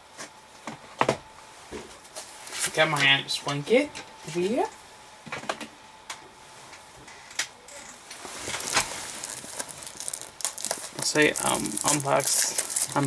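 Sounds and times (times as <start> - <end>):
plastic wrap crinkling: 8.2 - 13.0.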